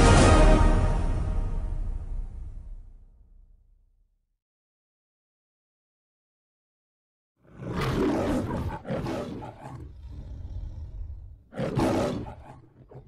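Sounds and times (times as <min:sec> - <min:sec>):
lion growling: 0:07.4 - 0:13.0
lion roaring: 0:07.4 - 0:13.0.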